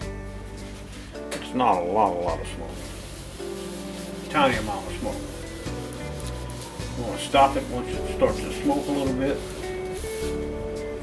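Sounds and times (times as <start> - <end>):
background music: 0.0 - 11.0
cloth rubbing cast iron skillet: 2.0 - 11.0.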